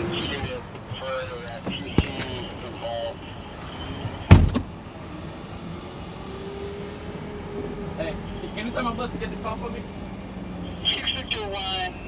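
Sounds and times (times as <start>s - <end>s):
city street traffic: 0.0s - 12.0s
loud sudden thump: 4.3s - 4.7s.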